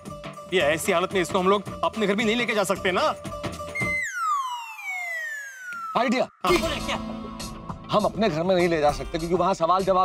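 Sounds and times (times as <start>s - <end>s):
whistle tone gliding down: 3.8s - 6.5s
voice: 6.0s - 7.0s.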